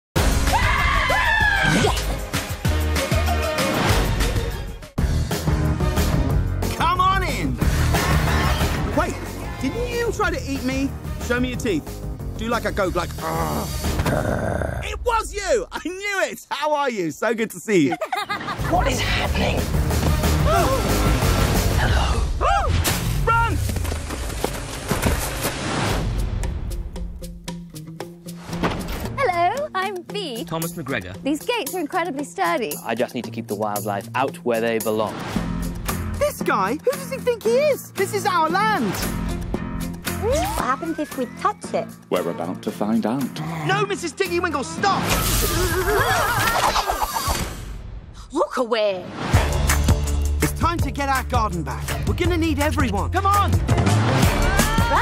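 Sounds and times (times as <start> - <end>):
music: 0.2 - 16.2, 18.3 - 55.0
high-pitched voices screaming: 0.5 - 2.0.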